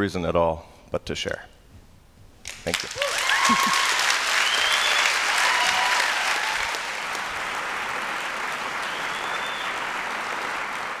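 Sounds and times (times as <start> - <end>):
audience applauding: 2.5 - 11.0.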